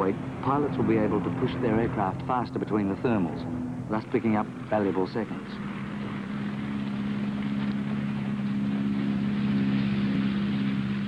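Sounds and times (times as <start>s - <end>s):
propeller plane engine drone: 0.0s - 11.0s.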